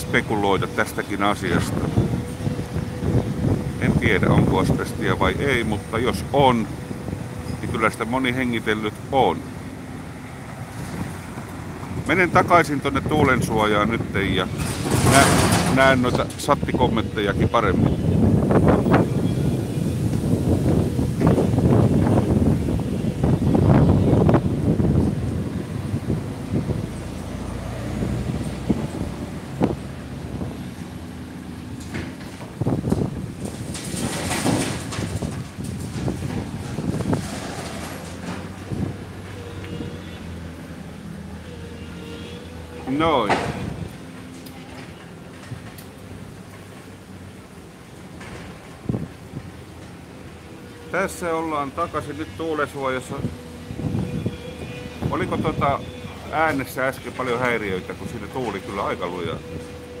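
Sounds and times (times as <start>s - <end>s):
wind buffeting microphone: 0.0s - 39.9s, 48.2s - 51.1s, 53.0s - 60.0s.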